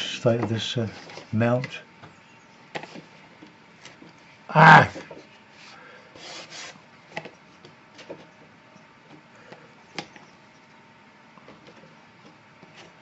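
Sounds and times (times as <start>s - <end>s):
card scraping against paper: 4.9s - 6.8s.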